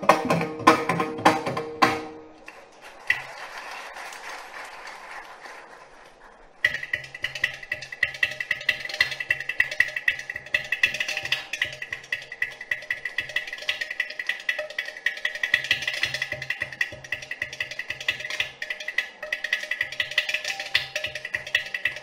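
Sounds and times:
mridangam and ghatam rhythm: 0.0s - 2.3s, 6.6s - 22.0s.

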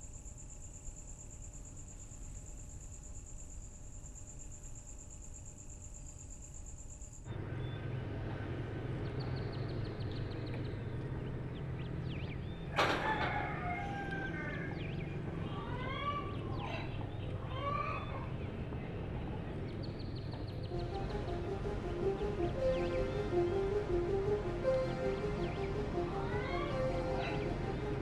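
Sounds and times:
low hum: 20.6s - 28.0s.

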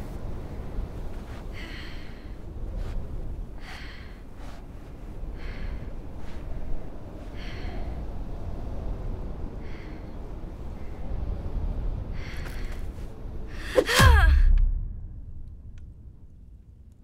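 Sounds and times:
low wind rumble: 0.0s - 17.0s
woman breathing heavily: 0.4s - 14.4s
woman crying out: 13.7s - 14.5s
heavy low thud: 13.9s - 16.6s.

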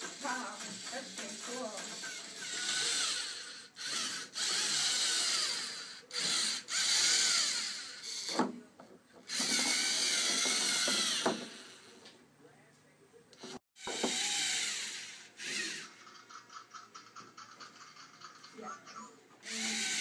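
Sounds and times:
robot motors and gears whirring: 0.1s - 8.3s, 9.3s - 11.6s, 13.4s - 15.9s, 19.4s - 20.0s.

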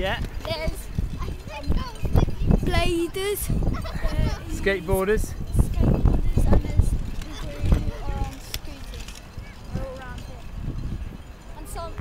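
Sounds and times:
boy talking: 0.4s - 10.6s, 11.5s - 12.0s
boy laughing: 2.8s - 4.9s.

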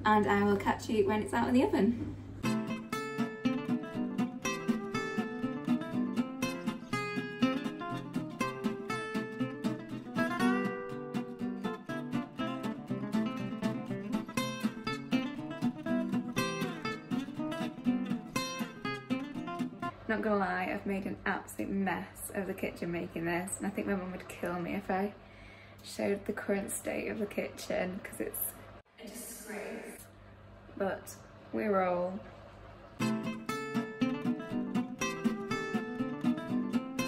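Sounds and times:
plucked acoustic guitar music: 2.4s - 20.0s, 33.0s - 37.0s.

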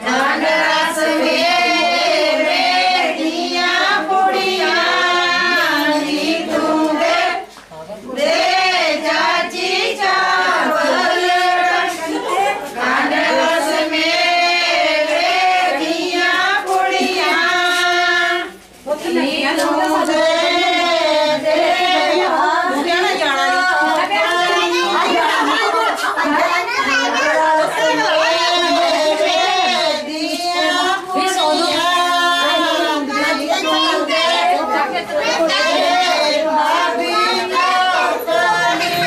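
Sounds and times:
women singing folk song: 0.0s - 39.0s.

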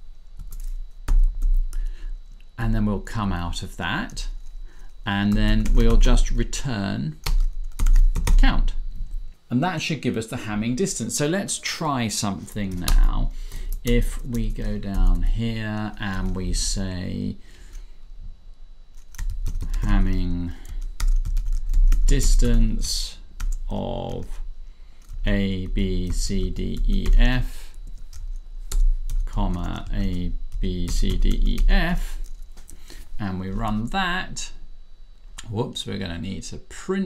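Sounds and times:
computer keyboard keystrokes: 0.4s - 1.8s, 7.2s - 8.4s, 19.0s - 19.9s, 20.6s - 22.0s.

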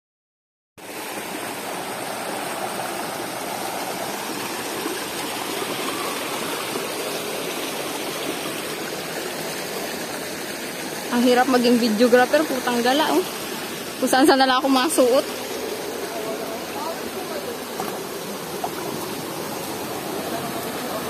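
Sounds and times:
stream rushing over rocks: 0.8s - 21.0s.

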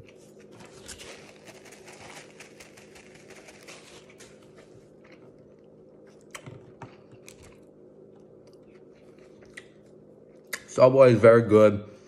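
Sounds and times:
person chewing bread: 0.0s - 6.4s, 7.0s - 10.6s
faint steady hum: 0.0s - 12.0s.

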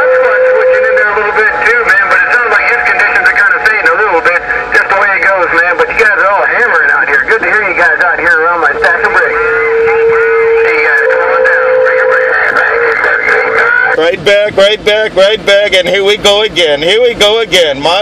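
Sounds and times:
garbled radio voices: 0.0s - 18.0s.

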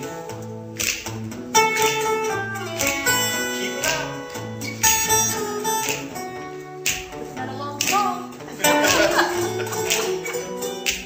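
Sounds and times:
guitars playing: 0.0s - 11.0s
finger snaps: 0.8s - 2.1s, 2.7s - 6.2s, 6.8s - 8.0s, 9.8s - 11.0s.

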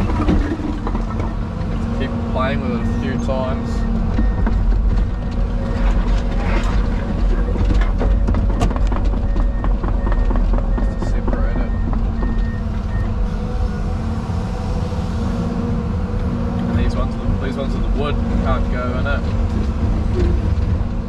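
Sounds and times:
concrete knocking and clattering: 0.0s - 1.4s, 4.1s - 13.0s
excavator diesel engine running: 0.0s - 21.0s
hydraulics working: 0.0s - 21.0s.

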